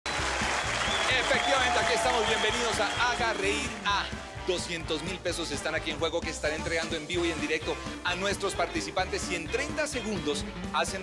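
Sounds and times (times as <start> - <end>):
crowd clapping and cheering: 0.0 - 5.9
background music with steady beat: 0.1 - 11.0.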